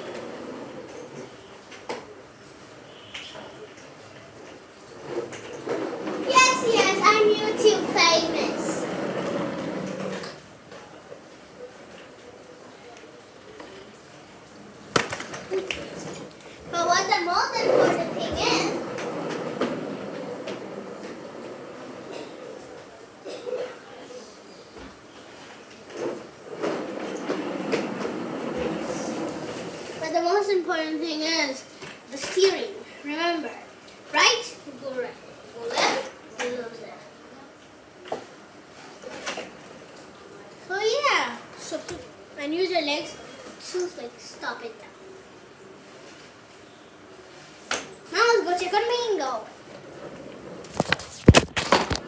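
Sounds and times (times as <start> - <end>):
plastic toy wheels rolling on tiles: 4.9 - 10.4, 17.0 - 22.1, 25.9 - 30.0, 49.6 - 52.0.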